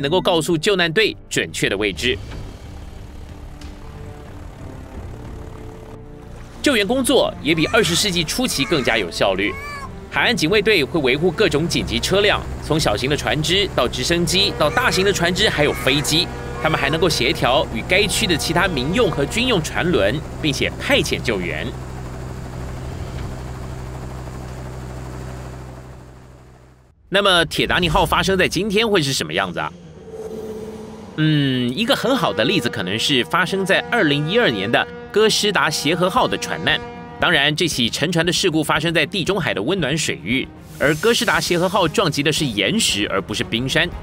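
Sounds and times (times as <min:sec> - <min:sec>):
soft background music: 0:00.0 - 0:24.3, 0:28.0 - 0:44.0
propeller aircraft engines droning: 0:01.6 - 0:44.0.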